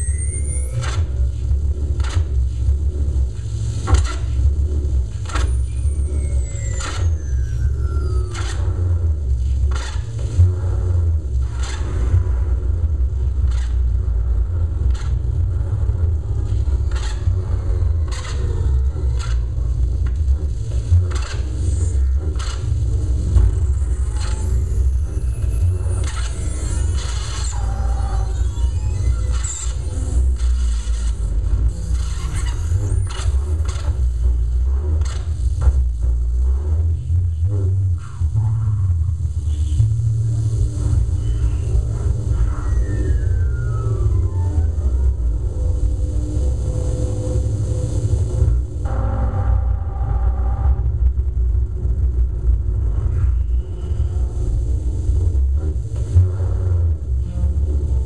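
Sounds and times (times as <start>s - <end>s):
low electronic rumble: 0.0s - 58.0s
sharp clicks and scrapes: 18.0s - 20.2s, 34.9s - 35.8s.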